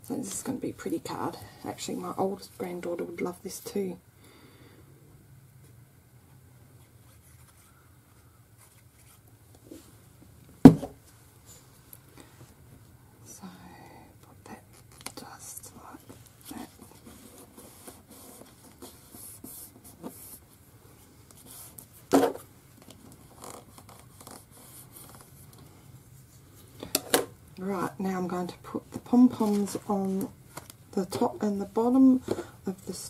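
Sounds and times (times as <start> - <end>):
person speaking: 27.6 - 33.0
paper rustling and scraping: 29.1 - 30.8.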